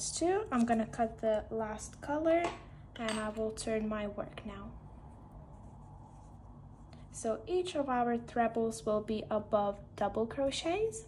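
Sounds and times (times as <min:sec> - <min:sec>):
low room hum: 0:00.0 - 0:11.0
soft rubbing of crochet fabric: 0:04.8 - 0:07.8.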